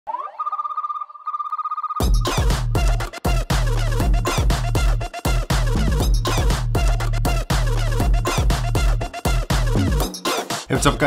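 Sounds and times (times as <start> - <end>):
electronic warbling tone: 0.1 - 2.2.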